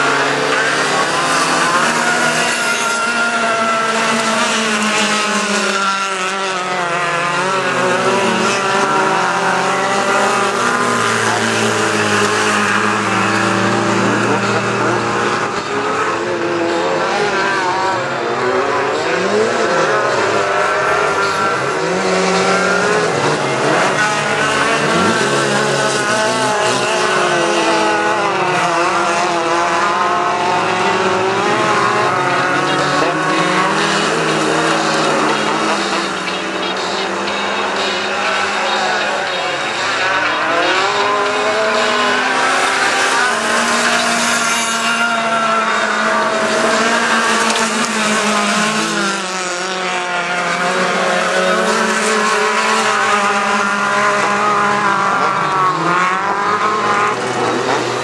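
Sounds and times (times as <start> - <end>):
racing car engines revving: 0.0 - 58.0.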